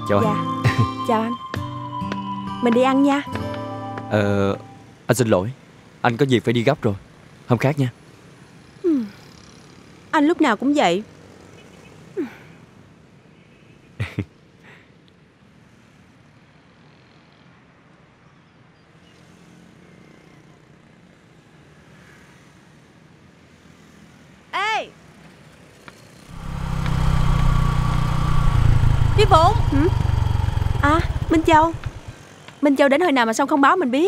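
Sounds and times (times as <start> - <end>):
motor scooter engine idling: 26.3 - 32.2.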